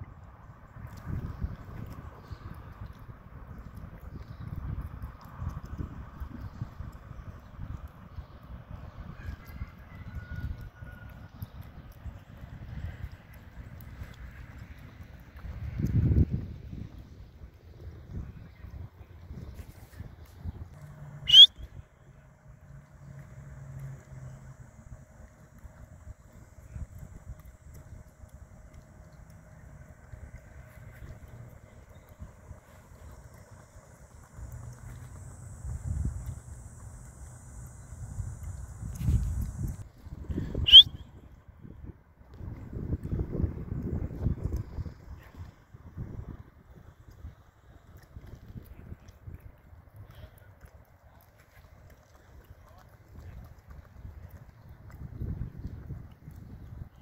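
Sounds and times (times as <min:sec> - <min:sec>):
wind rumbling on microphone: 0:00.0 - 0:57.0
high-pitched chirps: 0:21.2 - 0:21.7, 0:40.6 - 0:41.0.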